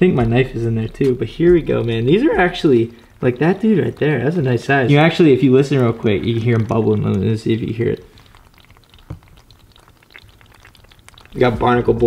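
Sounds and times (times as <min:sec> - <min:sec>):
crab bubbling crackling fizz: 0:00.0 - 0:12.0
low thump: 0:00.1 - 0:02.8.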